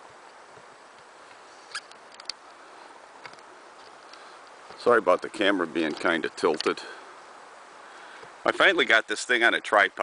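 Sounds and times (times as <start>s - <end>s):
faint steady hiss: 0.0s - 10.0s
small sharp clicks: 0.2s - 2.4s.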